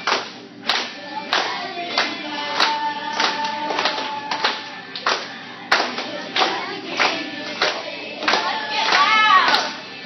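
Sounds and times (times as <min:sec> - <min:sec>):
children clapping and tapping: 0:00.0 - 0:09.8
group singing: 0:00.6 - 0:10.0.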